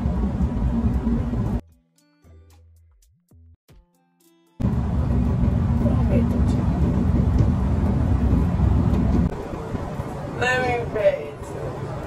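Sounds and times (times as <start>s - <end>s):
car road and engine noise: 0.0s - 1.6s, 4.6s - 12.0s.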